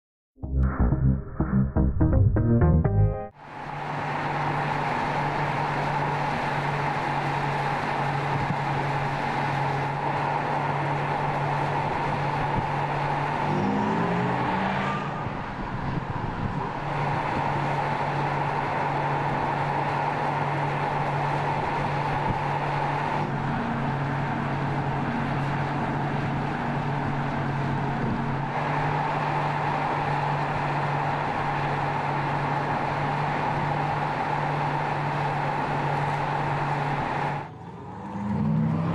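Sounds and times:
low hum: 0:00.4 - 0:03.4
steady higher tone: 0:00.4 - 0:03.4.

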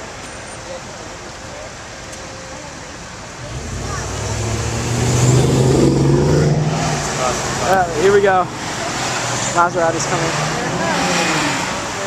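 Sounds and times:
street traffic hum: 0:00.0 - 0:12.0
car driving past: 0:03.4 - 0:12.0.

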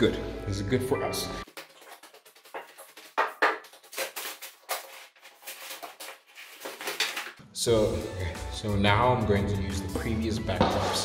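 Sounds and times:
footsteps: 0:01.4 - 0:07.3
rolled sheet handling rustles: 0:01.5 - 0:07.4.

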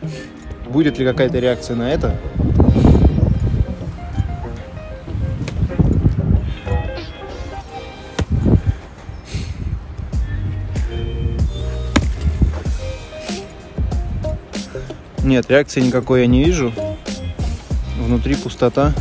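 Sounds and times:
background music: 0:00.0 - 0:09.4, 0:10.1 - 0:19.0.

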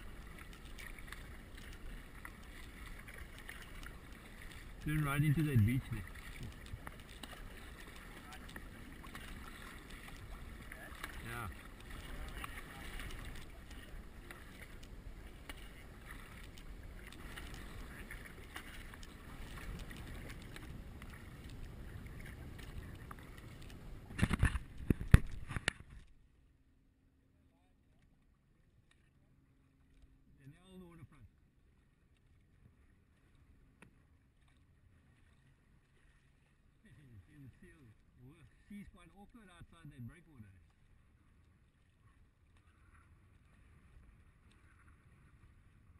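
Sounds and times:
paddle strokes in water: 0:00.0 - 0:26.2, 0:27.4 - 0:45.9
water and wind noise: 0:00.0 - 0:45.9.

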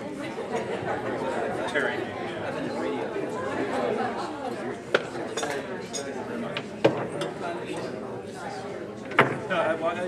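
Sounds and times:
people chatting: 0:00.0 - 0:10.0
dishes and cutlery clinking: 0:05.0 - 0:06.2.

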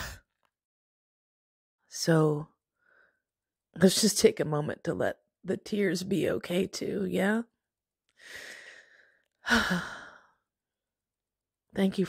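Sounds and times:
woman breathing in: 0:08.2 - 0:10.4
woman sighing: 0:09.4 - 0:10.3.

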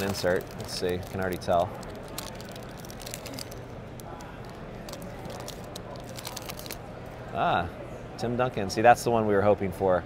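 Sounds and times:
foil wrapper tearing and crinkling: 0:00.0 - 0:06.8
background hubbub: 0:00.0 - 0:10.0.

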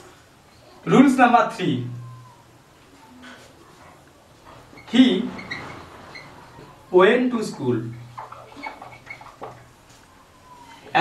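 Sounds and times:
marker squeaking on whiteboard: 0:04.6 - 0:06.8, 0:07.9 - 0:09.8.

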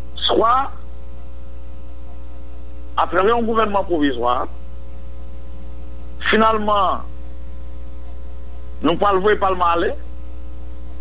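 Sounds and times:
electrical mains hum: 0:00.0 - 0:11.0
faint high steady tones: 0:00.0 - 0:11.0.

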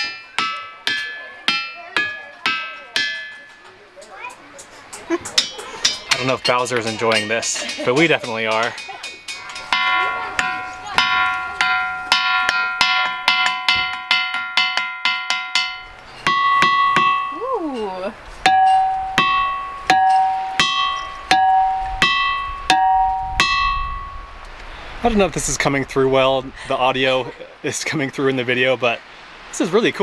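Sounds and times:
hammer striking ringing rock: 0:00.0 - 0:03.7, 0:05.3 - 0:24.4.

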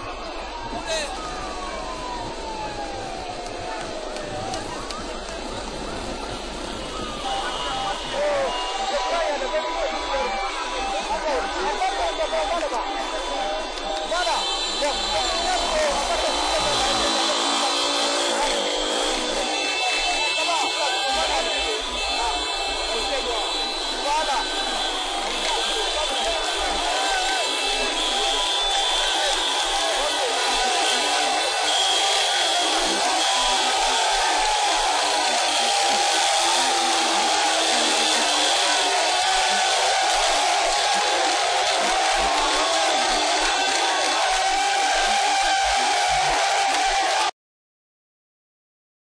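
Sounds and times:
crowd shouting and cheering: 0:00.0 - 0:47.3.

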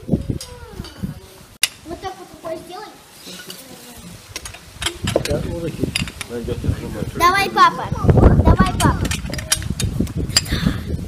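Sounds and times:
tableware clicking and knocking: 0:04.4 - 0:06.4.

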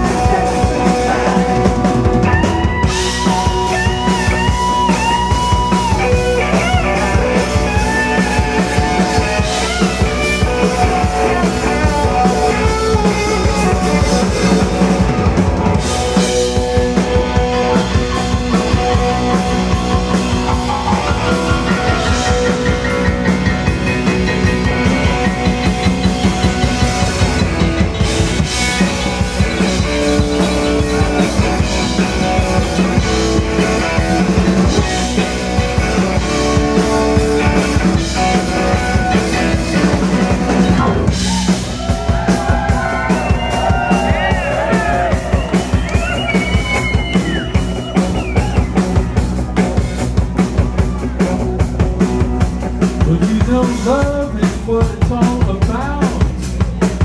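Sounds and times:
person singing: 0:00.0 - 0:04.5, 0:53.0 - 0:56.5
lead guitar bending notes: 0:00.0 - 0:41.7
live rock band playing: 0:00.0 - 0:57.0.

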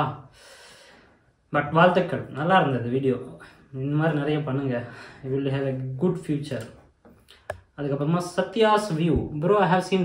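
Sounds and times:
man speaking: 0:00.0 - 0:00.3, 0:01.5 - 0:06.9, 0:07.6 - 0:10.0.

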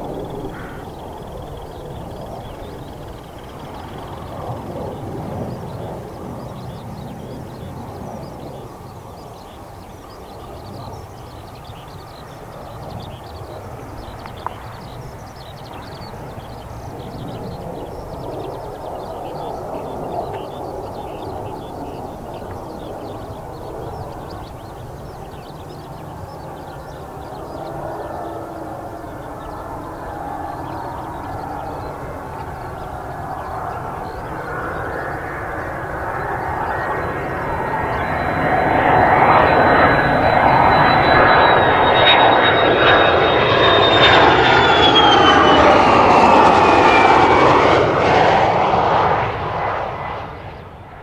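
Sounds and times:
jet engine with high whine: 0:00.0 - 0:51.0.

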